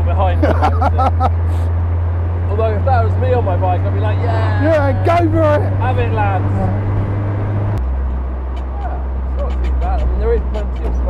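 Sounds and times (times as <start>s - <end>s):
car engine droning: 0.0s - 11.0s.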